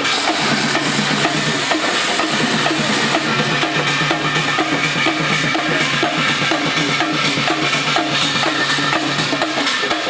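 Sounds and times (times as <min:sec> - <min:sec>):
dense wash of noise: 0:00.0 - 0:10.0
drums beating fast: 0:00.0 - 0:10.0.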